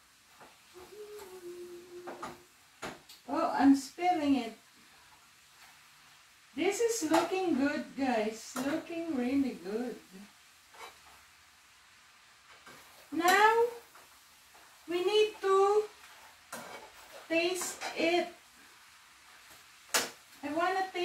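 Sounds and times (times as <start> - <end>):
woman vocalizing wordlessly: 0.8 - 2.5.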